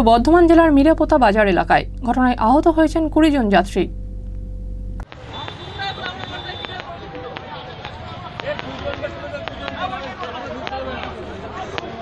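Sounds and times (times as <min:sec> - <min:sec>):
low studio hum: 0:00.0 - 0:05.0.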